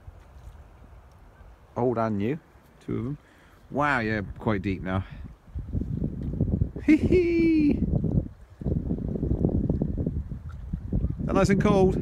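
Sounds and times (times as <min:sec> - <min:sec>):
wind buffeting microphone: 0:03.0 - 0:12.0.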